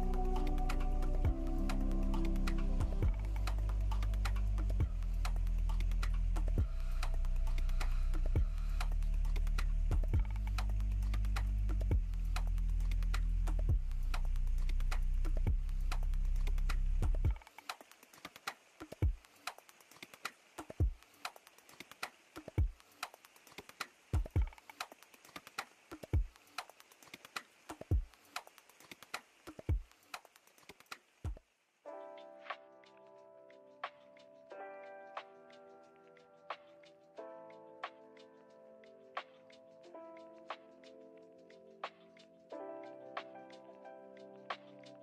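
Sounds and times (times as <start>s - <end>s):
low chords: 0.0s - 14.1s.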